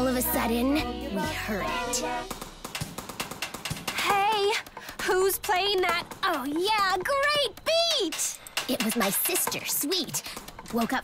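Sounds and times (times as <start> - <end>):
rhythmic tapping drumbeat: 0.0 - 11.0.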